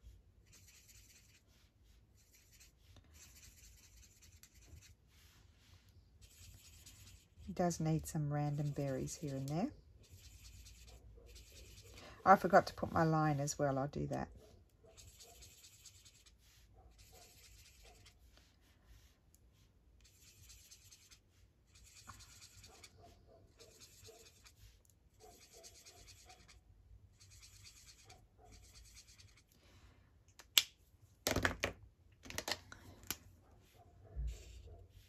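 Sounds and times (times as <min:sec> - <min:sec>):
marker scratching on paper: 0:00.0 - 0:29.5, 0:33.6 - 0:35.0.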